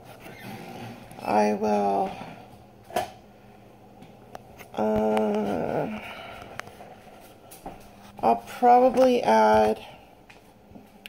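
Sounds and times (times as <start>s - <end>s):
person speaking: 1.2s - 2.4s, 4.6s - 7.0s, 8.0s - 10.1s.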